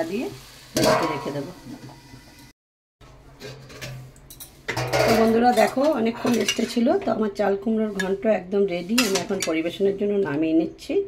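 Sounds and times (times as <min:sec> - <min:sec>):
spatula stirring with sizzle: 0:00.0 - 0:02.5, 0:03.6 - 0:10.2
steel plate clattering on pan: 0:00.8 - 0:01.4, 0:03.4 - 0:06.8, 0:09.0 - 0:09.6.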